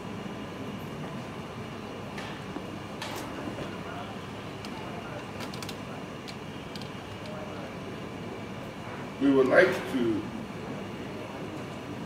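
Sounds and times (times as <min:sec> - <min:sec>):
hall room hum and hiss: 0:00.0 - 0:12.0.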